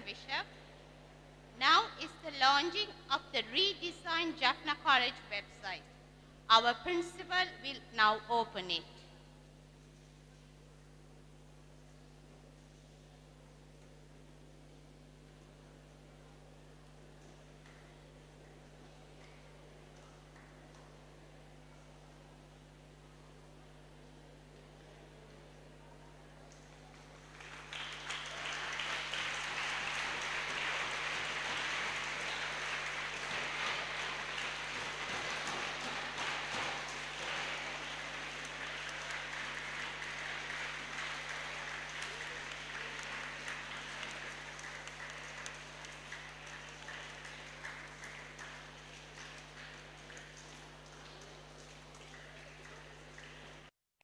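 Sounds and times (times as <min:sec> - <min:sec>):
audience applause: 0:26.6 - 0:53.7.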